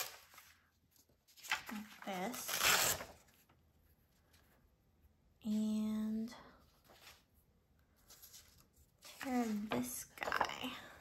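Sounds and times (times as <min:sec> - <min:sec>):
paper rustling: 0:00.0 - 0:04.6, 0:06.7 - 0:10.5.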